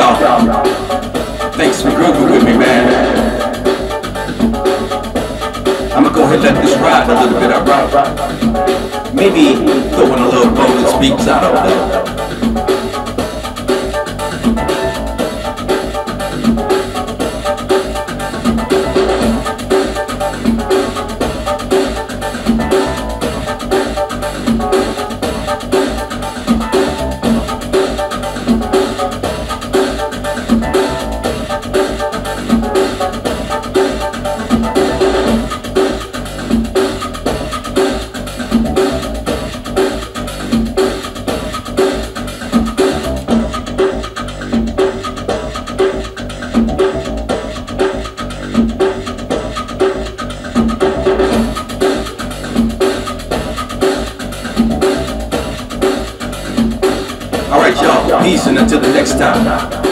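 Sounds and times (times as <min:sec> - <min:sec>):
synthesizer keyboard: 0:00.0 - 0:35.7, 0:57.4 - 0:59.9
drum machine beat: 0:00.0 - 0:59.9.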